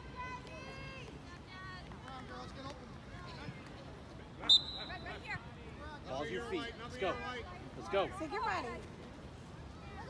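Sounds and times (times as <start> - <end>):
referee's whistle blast: 4.4 - 5.2.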